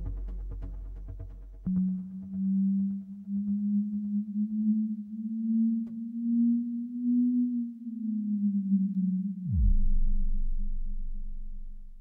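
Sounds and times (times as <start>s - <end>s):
low synthesizer drone: 0.0s - 12.0s.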